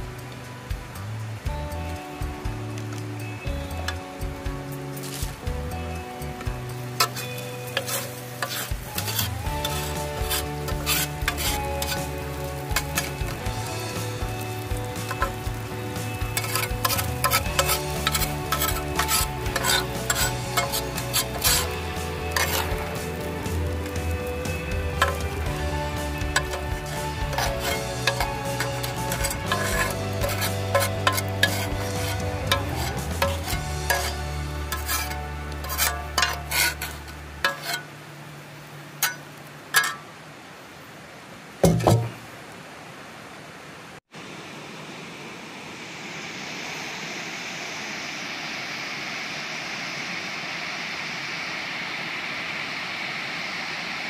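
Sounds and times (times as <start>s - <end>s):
background music: 0.0s - 37.9s
light sizzle: 0.0s - 54.0s
spatula scraping frying pan: 7.0s - 13.4s, 14.9s - 15.6s, 16.2s - 23.8s, 24.9s - 37.9s.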